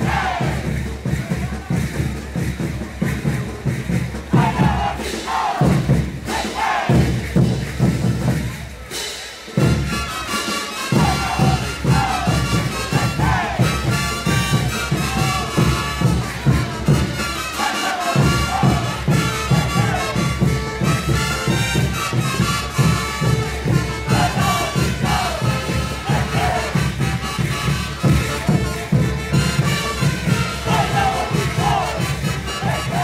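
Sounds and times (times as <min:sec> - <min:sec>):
brass band playing: 0:00.0 - 0:01.0, 0:04.2 - 0:33.0
bass drum beat: 0:00.0 - 0:08.9, 0:10.9 - 0:17.4, 0:18.2 - 0:33.0.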